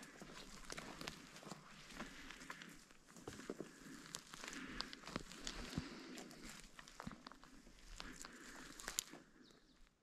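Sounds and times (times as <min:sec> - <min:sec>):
footsteps on forest floor: 0:00.0 - 0:10.0
twigs crackling: 0:00.0 - 0:10.0.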